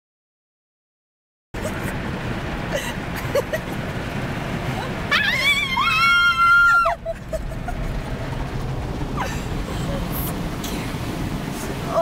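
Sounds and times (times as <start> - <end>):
car wash spraying: 1.6 - 12.0
woman squealing: 5.1 - 7.2.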